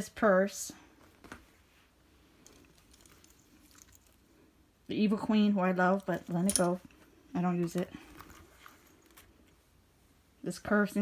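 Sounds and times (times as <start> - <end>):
soft handling clicks and rustles: 0.9 - 4.4, 5.8 - 9.7.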